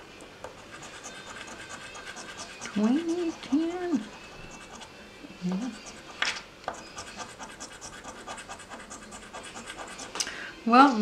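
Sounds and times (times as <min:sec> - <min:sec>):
coin scraping scratch-off ticket: 0:00.6 - 0:04.9, 0:06.8 - 0:10.1.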